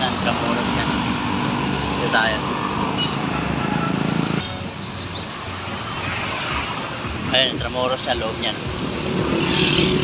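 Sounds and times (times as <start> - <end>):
traffic noise: 0.0 - 10.0
vehicle engine and road noise: 0.0 - 10.0.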